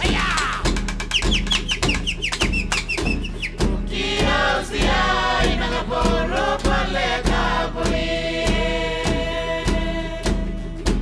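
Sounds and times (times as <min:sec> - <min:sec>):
steady percussion beat: 0:00.0 - 0:11.0
high-pitched falling calls: 0:00.4 - 0:03.6
group of voices singing: 0:03.5 - 0:11.0.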